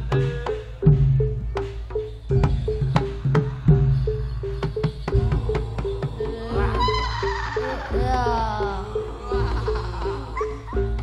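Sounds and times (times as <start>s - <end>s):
gong-chime notes: 0.0s - 11.0s
low drum and bass: 0.0s - 11.0s
high rising-and-falling tones: 3.0s - 11.0s.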